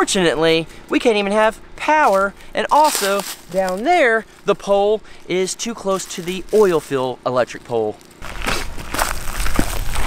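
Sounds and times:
footsteps crunching on dry leaves: 0:00.6 - 0:10.0.

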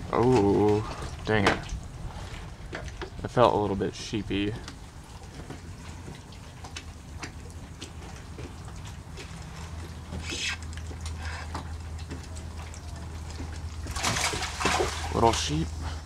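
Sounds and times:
small ticks and light splashes: 0:00.0 - 0:16.0
steady low hum: 0:00.0 - 0:16.0
water lapping and trickling: 0:00.0 - 0:16.0.

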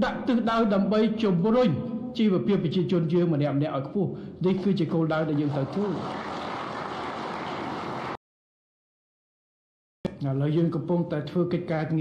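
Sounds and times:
man speaking: 0:00.0 - 0:06.0, 0:10.1 - 0:12.0
audience applauding: 0:05.3 - 0:08.2.

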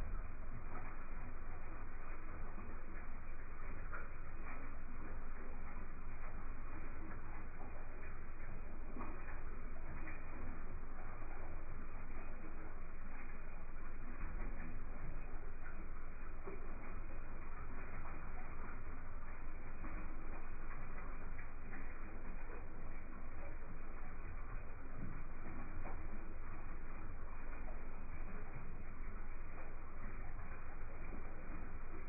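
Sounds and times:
faint ticks: 0:00.0 - 0:32.0
room noise hum and hiss: 0:00.0 - 0:32.0.

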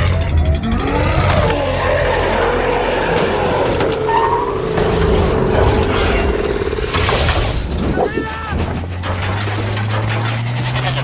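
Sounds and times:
person shouting: 0:07.9 - 0:08.6.

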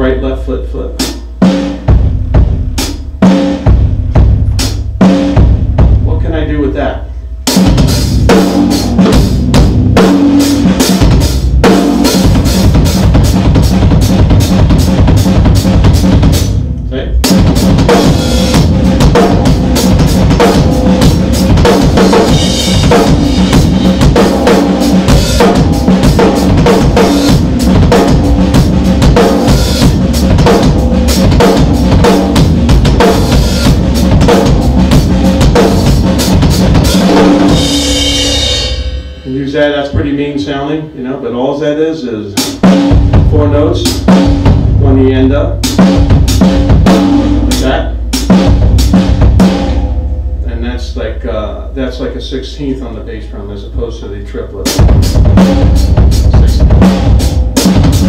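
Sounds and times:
fast drum kit playing: 0:00.8 - 0:40.6, 0:42.2 - 0:58.0.

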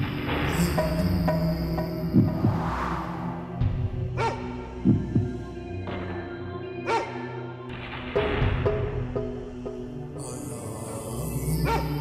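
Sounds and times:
low drone: 0:00.0 - 0:06.1, 0:10.0 - 0:12.0.

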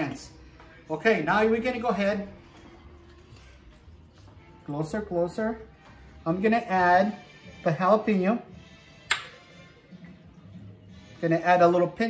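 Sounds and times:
metal cup clinking down: 0:09.1 - 0:09.4.

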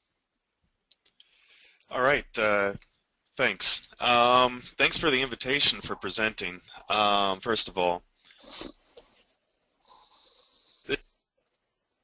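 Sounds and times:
breathing into microphone: 0:01.2 - 0:01.9, 0:08.2 - 0:11.1.

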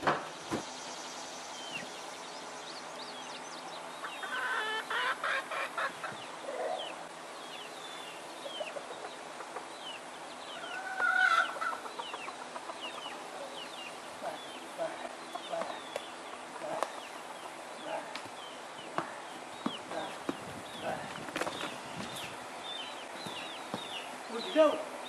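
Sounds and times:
chickens clucking: 0:03.6 - 0:24.6
chicken call: 0:04.1 - 0:06.9.

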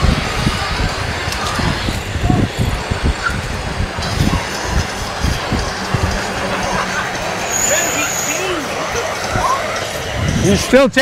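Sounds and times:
high-pitched whine: 0:00.0 - 0:11.0
wheel rumble on pavement: 0:00.0 - 0:11.0
wind buffeting microphone: 0:00.0 - 0:11.0.

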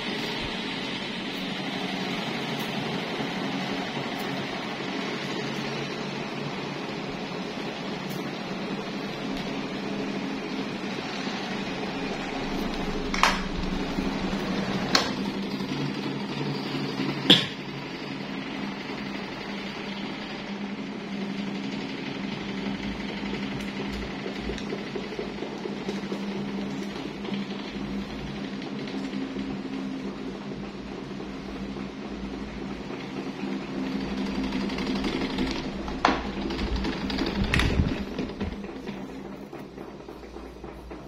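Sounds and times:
fan motor humming: 0:00.0 - 0:41.0.

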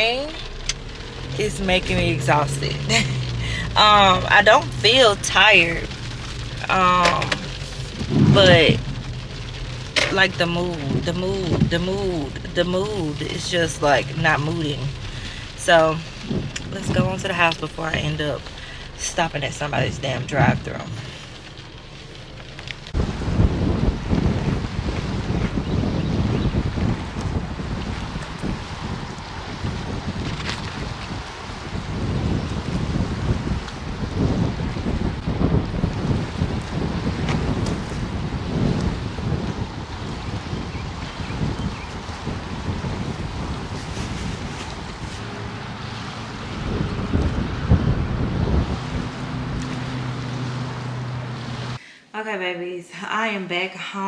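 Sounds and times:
low steady hum: 0:00.0 - 0:24.8
small waves washing on shore: 0:00.0 - 0:51.8
wind gusting against microphone: 0:00.0 - 0:51.8.

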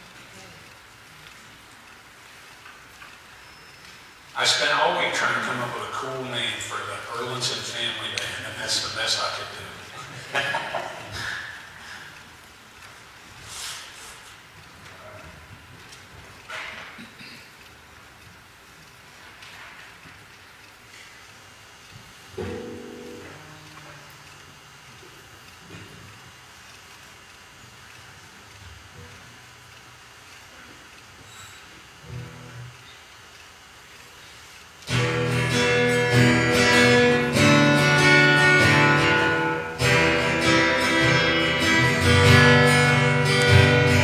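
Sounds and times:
faint hiss: 0:13.2 - 0:14.5
soft ticks: 0:14.5 - 0:15.0, 0:17.6 - 0:22.1, 0:23.6 - 0:31.3, 0:32.6 - 0:34.9.

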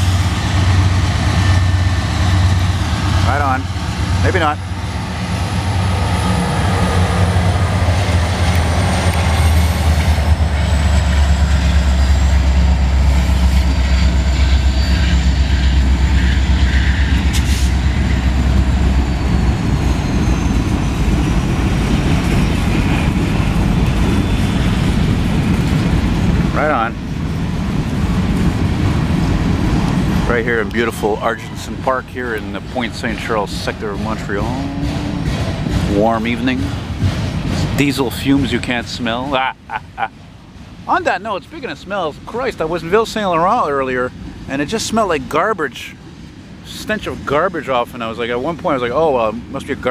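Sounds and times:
diesel locomotive engine drone: 0:00.0 - 0:49.9
freight cars rumbling and clattering: 0:00.0 - 0:49.9.

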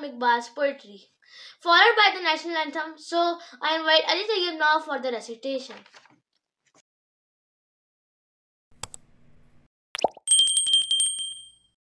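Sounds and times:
click: 0:08.8 - 0:09.1
pop falling in pitch: 0:10.0 - 0:10.2
small bell trilling: 0:10.3 - 0:11.8.

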